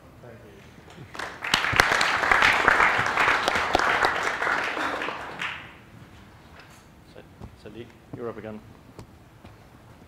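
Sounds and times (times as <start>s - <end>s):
audience applause: 0.9s - 5.8s.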